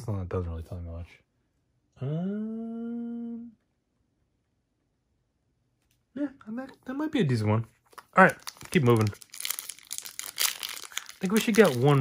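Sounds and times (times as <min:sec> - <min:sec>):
plastic wrapper tearing and crinkling: 0:07.9 - 0:12.0.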